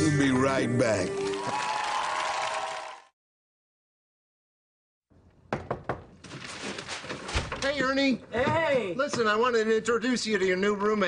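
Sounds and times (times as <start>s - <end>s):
music: 0.0s - 1.9s
knocking on a door: 5.5s - 6.1s.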